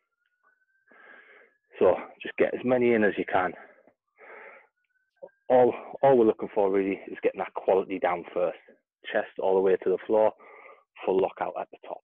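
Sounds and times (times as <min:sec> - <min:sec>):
man breathing heavily: 0:00.9 - 0:01.6, 0:03.6 - 0:04.8, 0:10.4 - 0:10.9.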